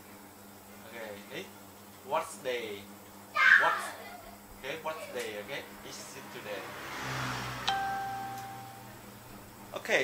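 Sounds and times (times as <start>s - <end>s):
electronic tone: 7.7s - 8.9s.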